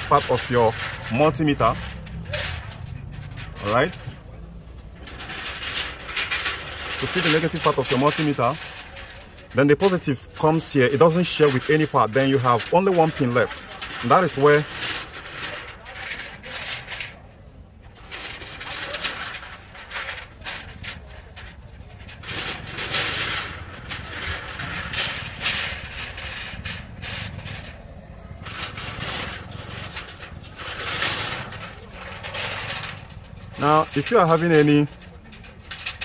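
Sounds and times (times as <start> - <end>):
small clicks and rustles of wires: 0.0 - 36.0.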